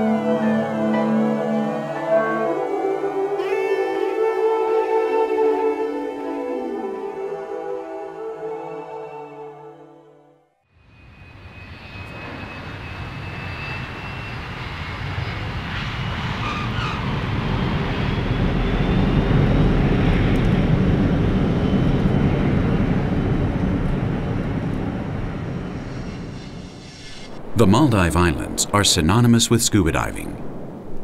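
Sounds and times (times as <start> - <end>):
faint rising engine whine: 10.8 - 28.8
jet engines rumbling: 10.9 - 31.0.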